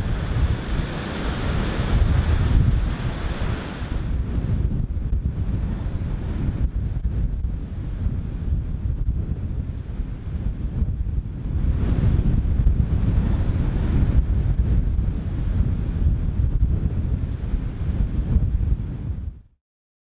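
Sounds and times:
surf breaking on shore: 0:00.0 - 0:10.8, 0:11.4 - 0:18.8
wind buffeting microphone: 0:00.0 - 0:19.5.

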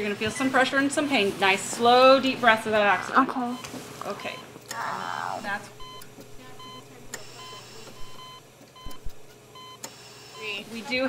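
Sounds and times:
monitor alarm beeping: 0:05.4 - 0:10.7.

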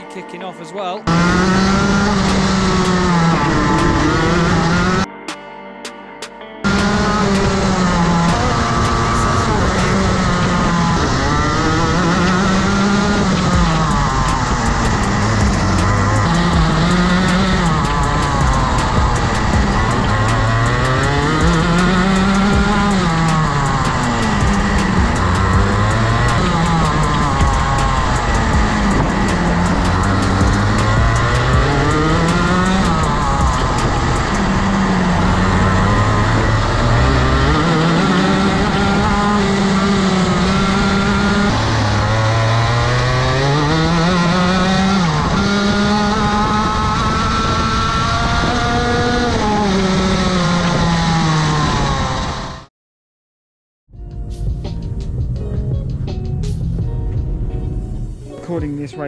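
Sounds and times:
kart engine accelerating and braking: 0:01.0 - 0:05.1, 0:06.6 - 0:52.7.

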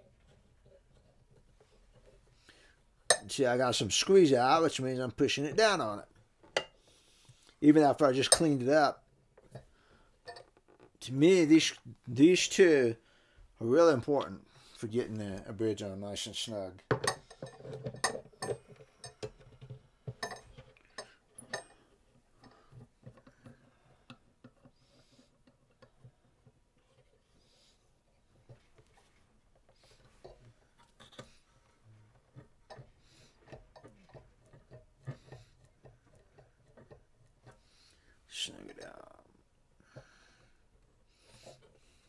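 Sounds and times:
metal clamps clicking and tapping: 0:03.1 - 0:03.4, 0:06.4 - 0:06.8, 0:08.2 - 0:08.6, 0:09.4 - 0:10.7, 0:16.9 - 0:24.8, 0:32.1 - 0:37.6.

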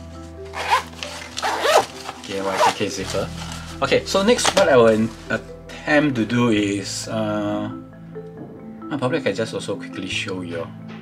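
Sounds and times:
zipper being pulled: 0:00.5 - 0:03.5.

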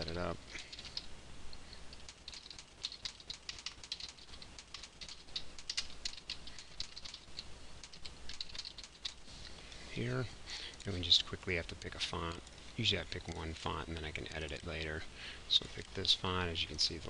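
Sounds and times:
computer keyboard typing: 0:00.6 - 0:01.1, 0:01.9 - 0:09.2.

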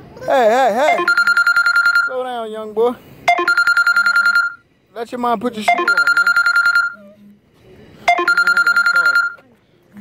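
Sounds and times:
electronic ringing trill: 0:00.9 - 0:02.3, 0:03.3 - 0:04.6, 0:05.7 - 0:07.0, 0:08.1 - 0:09.4.

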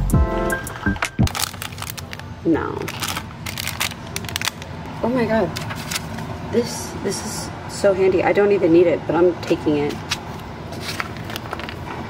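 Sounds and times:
plastic wrappers crinkling: 0:01.2 - 0:04.8, 0:05.5 - 0:06.2, 0:10.0 - 0:11.9.

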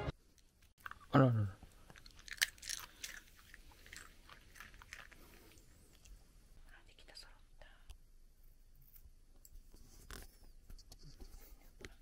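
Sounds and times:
dog crunching a dry treat: 0:01.8 - 0:06.1.

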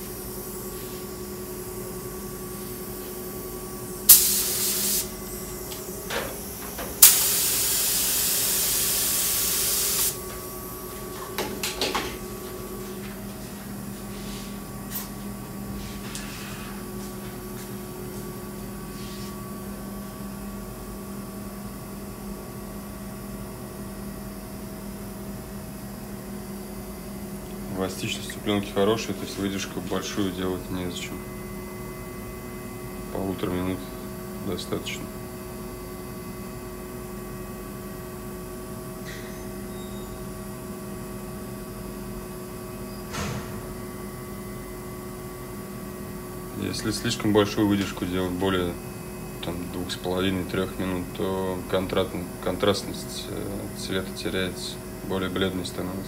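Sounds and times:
spray gun hissing: 0:04.1 - 0:05.1, 0:07.0 - 0:10.2.

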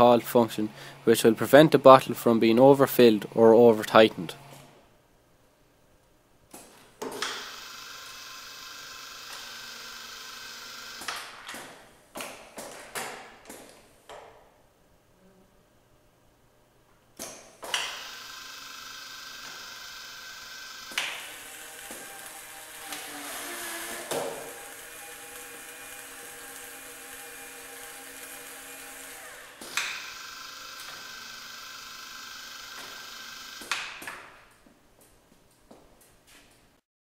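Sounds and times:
machine motor hum: 0:07.2 - 0:11.3, 0:17.7 - 0:33.8.

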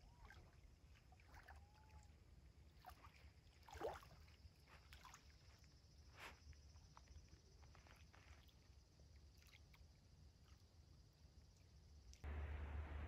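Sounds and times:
small waves lapping: 0:00.0 - 0:05.7
low rumble: 0:12.2 - 0:13.0.

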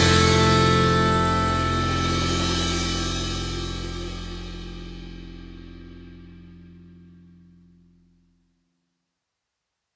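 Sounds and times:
held electric guitar chord: 0:00.0 - 0:05.4
cymbal wash: 0:00.0 - 0:06.6.

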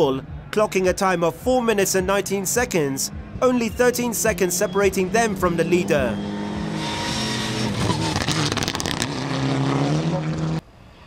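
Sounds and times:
rally car engine revving: 0:03.1 - 0:10.6
exhaust cracks: 0:07.0 - 0:10.6.

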